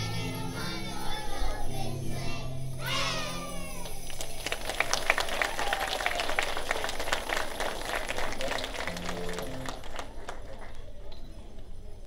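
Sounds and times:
audience applause: 3.8s - 11.0s.

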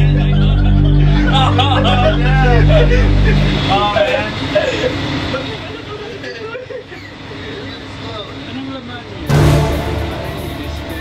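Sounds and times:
low motor hum: 0.0s - 5.6s
people talking: 0.0s - 11.0s.

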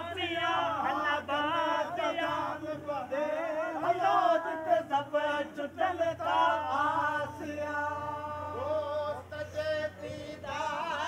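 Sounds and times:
men singing devotional song: 0.0s - 11.0s.

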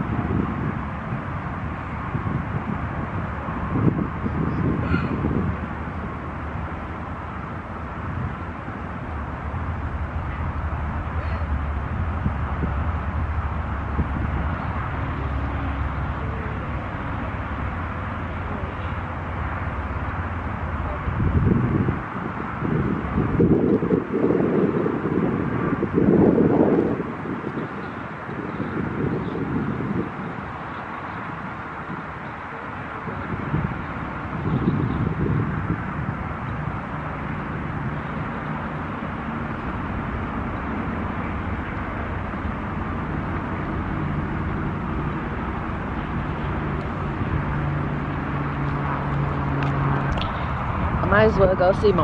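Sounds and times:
low steady engine hum: 0.0s - 52.0s
wind buffeting microphone: 0.0s - 52.0s.

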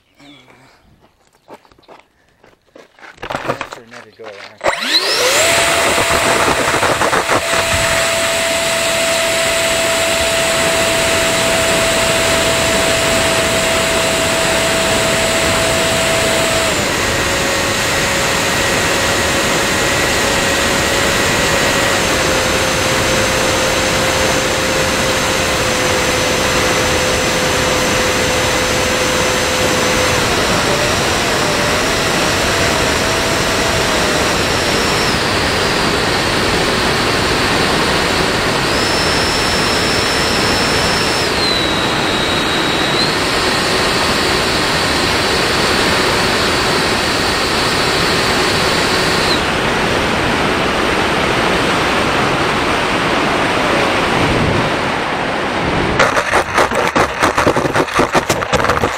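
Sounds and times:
model airplane motor whine: 4.6s - 55.0s, 55.9s - 58.9s
wind rush: 49.5s - 58.9s.

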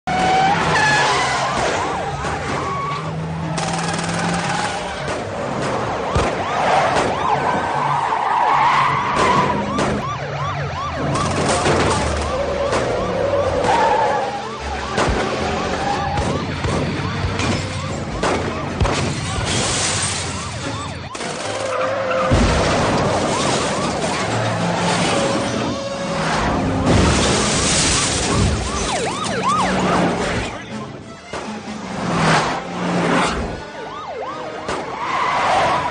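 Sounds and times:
police sirens wailing and yelping: 0.0s - 35.9s
speeding cars: 0.0s - 35.9s
film score music: 29.7s - 35.0s.

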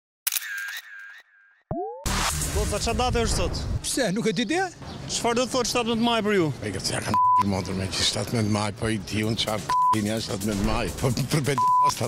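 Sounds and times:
camera shutter clicking: 0.3s - 1.0s.

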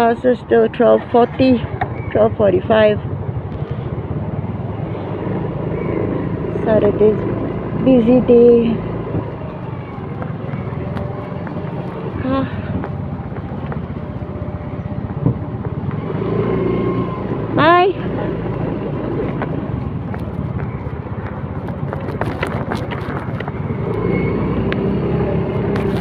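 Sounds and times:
motor scooter engine running: 0.8s - 26.0s.

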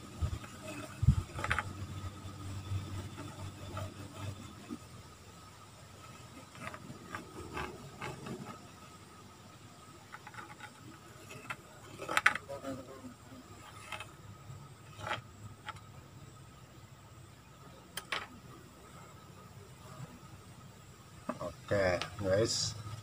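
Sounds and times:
low steady hum: 0.0s - 23.0s
tool scratching on wood: 0.2s - 4.8s, 6.0s - 8.8s, 10.0s - 12.8s, 13.4s - 14.2s, 14.8s - 15.9s.

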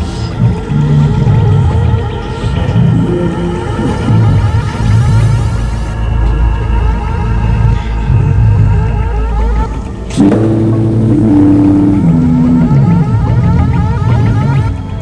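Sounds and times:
low drone with rippling tones: 0.0s - 15.0s
synth tone stepping down: 10.2s - 13.8s.

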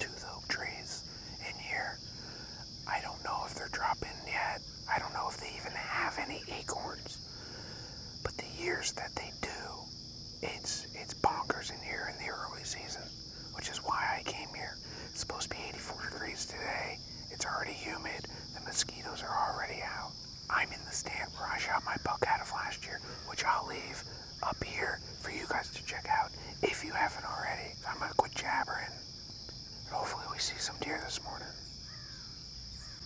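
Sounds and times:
man whispering: 0.0s - 29.1s, 29.8s - 31.6s
insect chorus: 0.0s - 33.0s.

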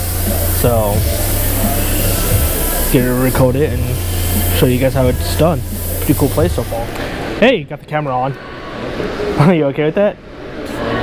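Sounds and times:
low hum: 0.0s - 7.3s
steady loud hiss: 0.0s - 7.8s
faint background music: 0.0s - 11.0s.

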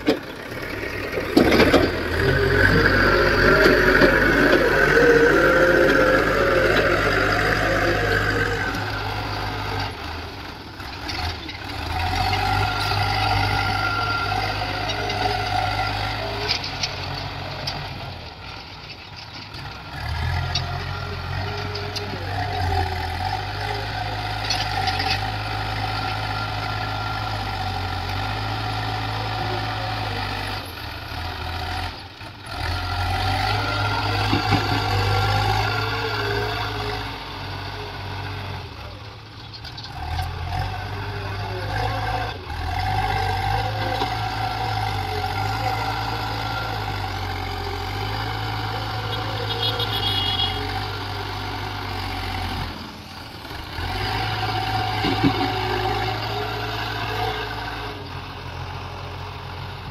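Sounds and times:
backhoe diesel engine working: 0.0s - 59.9s.

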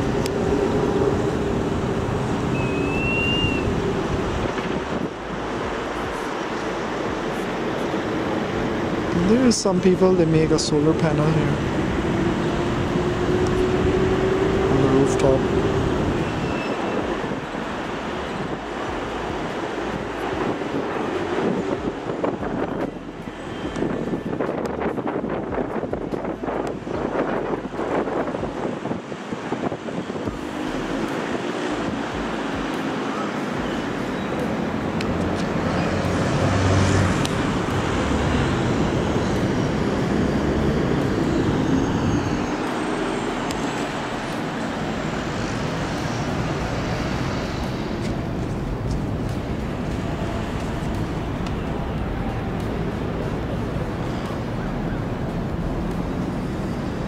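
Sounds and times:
city traffic noise: 0.0s - 57.0s.

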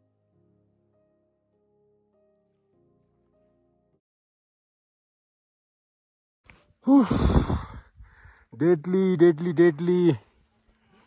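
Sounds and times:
person sighing loudly: 6.8s - 8.5s.

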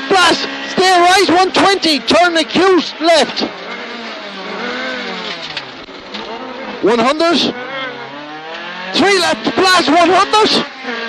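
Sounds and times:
car engine revving in cabin: 0.0s - 11.0s.

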